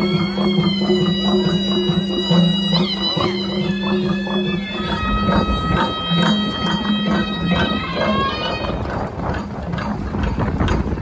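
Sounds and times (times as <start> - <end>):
rapid drumming over loudspeakers: 0.0 - 11.0.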